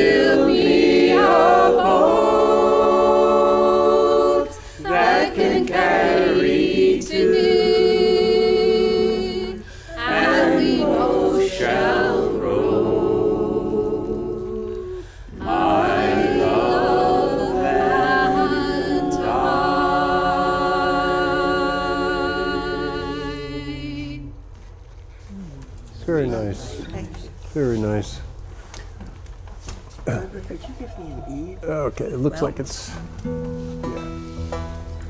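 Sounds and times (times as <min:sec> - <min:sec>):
voices singing along: 0:00.0 - 0:24.4.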